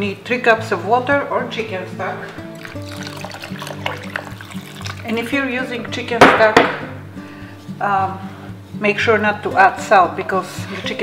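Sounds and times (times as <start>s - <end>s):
background music with held notes: 0.0s - 11.0s
water pouring into a pot: 2.5s - 5.4s.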